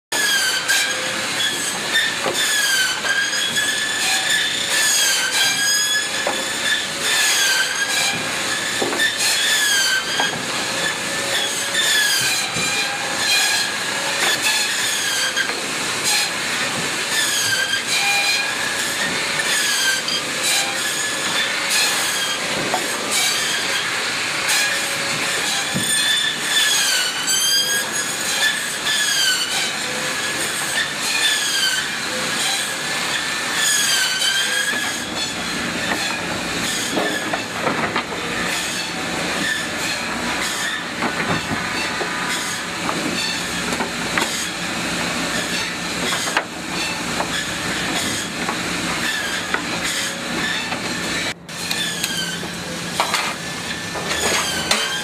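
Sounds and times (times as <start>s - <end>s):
circular saw whine cutting wood: 0.1s - 55.0s
rough running machine: 0.1s - 55.0s.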